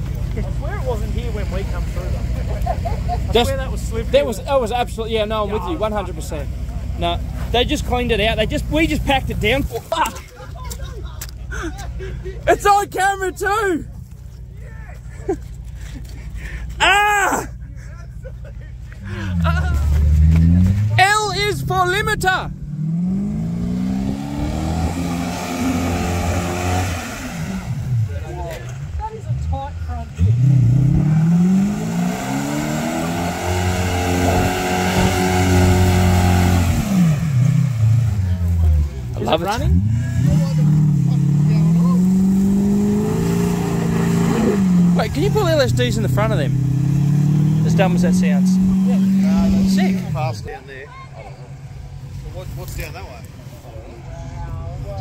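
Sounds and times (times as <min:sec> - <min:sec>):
voices and laughter: 0:00.0 - 0:08.0, 0:08.7 - 0:20.9, 0:47.6 - 0:55.0
car engine revving: 0:19.0 - 0:50.8.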